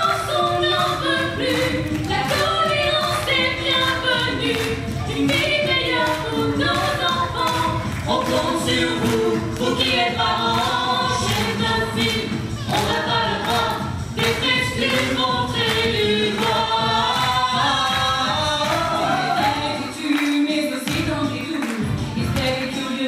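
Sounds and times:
mixed choir singing: 0.0s - 23.0s.

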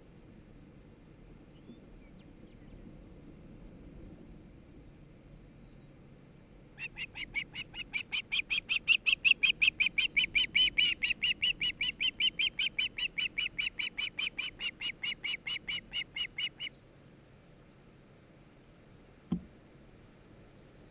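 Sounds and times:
osprey whistled calls: 6.8s - 16.8s.

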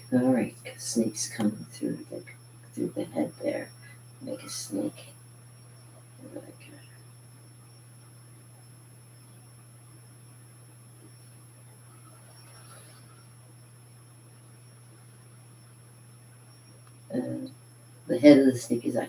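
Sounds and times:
faint high-pitched whine: 0.0s - 19.0s
low electrical hum: 0.0s - 19.0s.

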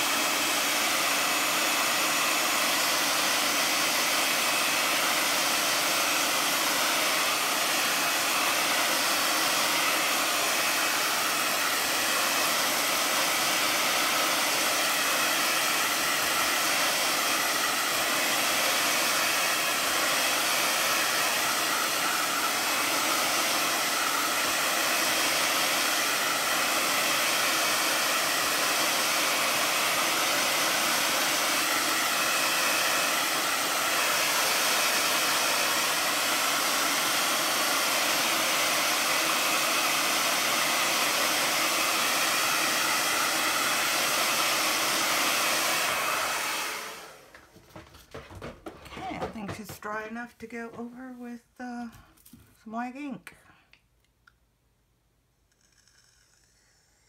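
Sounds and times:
hair dryer blowing: 0.0s - 53.1s, 55.5s - 57.0s.

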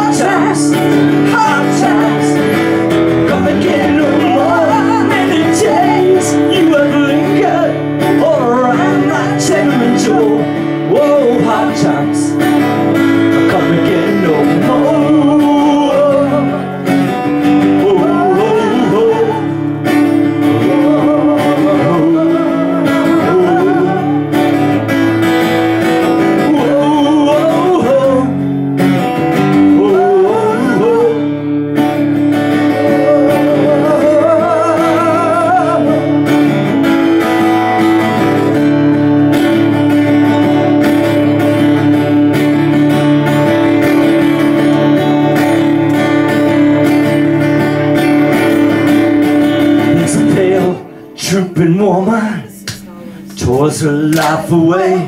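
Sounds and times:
acoustic guitar strumming: 0.0s - 55.0s
person singing with vibrato: 0.0s - 55.0s.

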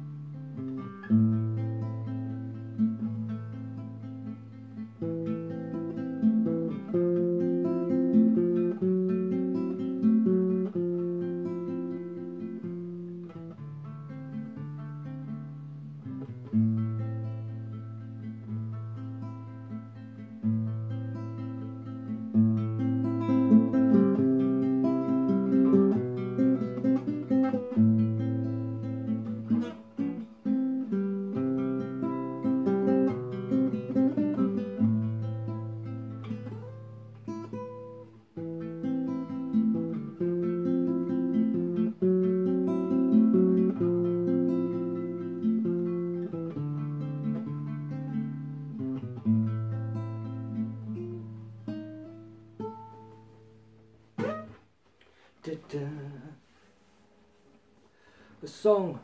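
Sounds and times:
fingerpicked classical guitar: 0.0s - 59.0s.

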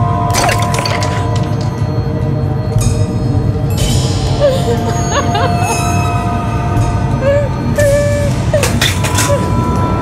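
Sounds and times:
dramatic background music drone: 0.0s - 10.0s
woman wailing and sobbing: 4.3s - 9.8s.

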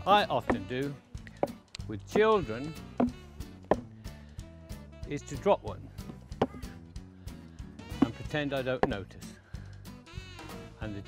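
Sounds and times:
background music: 0.0s - 11.0s
wooden boxes knocking together: 0.4s - 0.7s, 3.0s - 3.9s, 6.0s - 6.7s, 7.9s - 9.1s.

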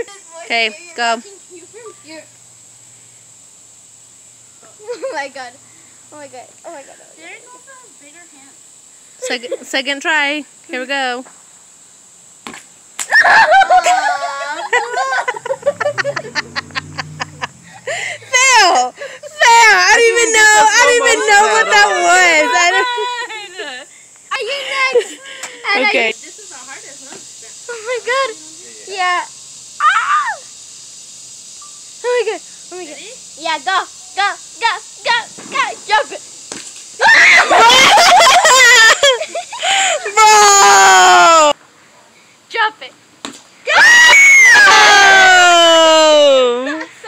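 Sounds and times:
young women laughing: 4.8s - 5.4s, 13.1s - 25.9s, 37.0s - 40.3s, 46.0s - 47.0s
person screaming: 37.0s - 38.1s, 39.7s - 41.6s, 43.7s - 46.7s.

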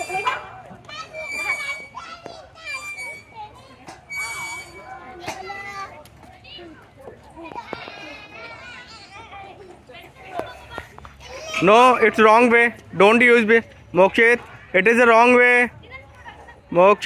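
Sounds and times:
children playing and calling out: 0.0s - 12.5s, 15.7s - 17.0s.

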